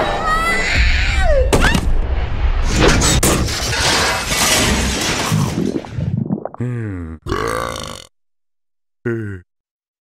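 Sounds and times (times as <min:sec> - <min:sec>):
cartoon monster burp: 0:06.6 - 0:08.2, 0:09.0 - 0:09.5.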